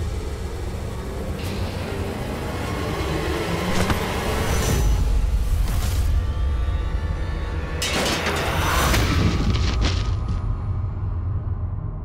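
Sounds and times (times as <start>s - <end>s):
low rumbling drone: 0.0s - 7.9s.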